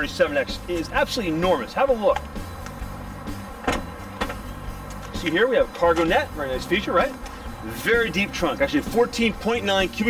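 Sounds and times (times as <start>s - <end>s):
car trunk lid opening: 3.2s - 6.3s
sharp clunk: 3.6s - 4.5s.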